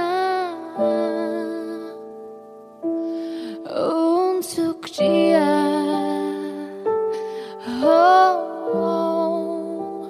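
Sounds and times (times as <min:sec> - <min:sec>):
woman singing pop ballad: 0:00.0 - 0:02.2, 0:03.3 - 0:10.0.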